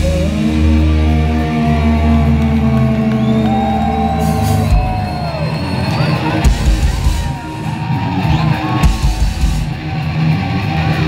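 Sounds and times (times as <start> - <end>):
distorted guitar chord: 0.0 - 4.1
fans whooping and shouting: 0.0 - 11.0
thrash metal band playing live: 0.0 - 11.0.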